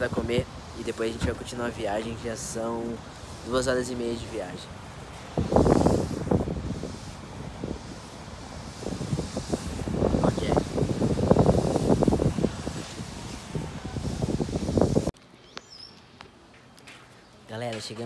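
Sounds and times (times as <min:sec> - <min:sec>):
wind buffeting microphone: 0:00.0 - 0:15.2.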